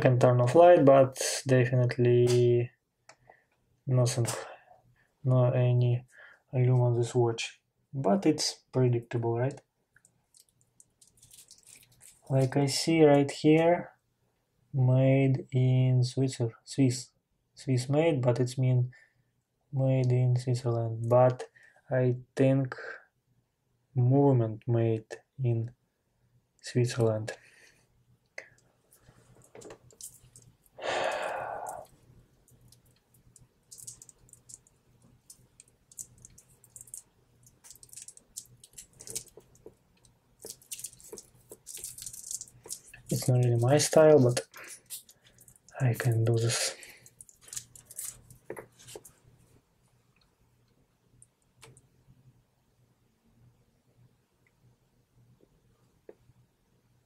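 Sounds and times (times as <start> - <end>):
watch bracelet clicks and rustles: 10.0 - 12.3, 28.9 - 30.7, 31.7 - 46.2, 46.9 - 49.2
person sighing: 30.8 - 31.8
metal watch bracelet clicking: 40.4 - 43.2.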